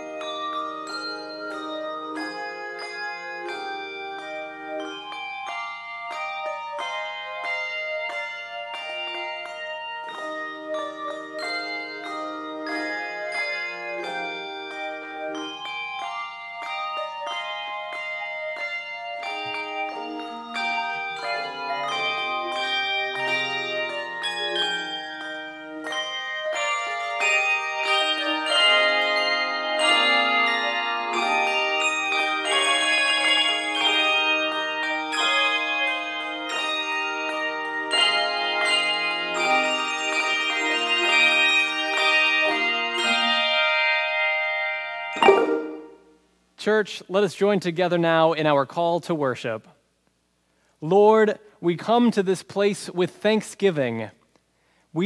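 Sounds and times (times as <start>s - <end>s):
handbell choir playing: 0.0s - 46.2s.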